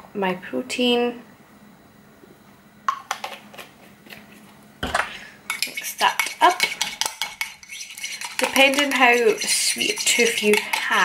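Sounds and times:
metal spoon clinking on a mug: 0:05.5 - 0:11.0.

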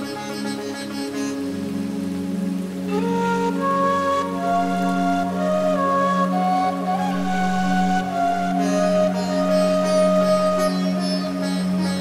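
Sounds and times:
ambient music drone: 0:00.0 - 0:12.0
rain-like hiss: 0:00.0 - 0:12.0.

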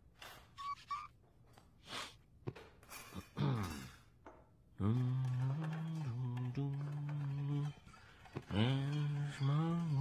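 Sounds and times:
person singing long notes: 0:04.8 - 0:10.0.

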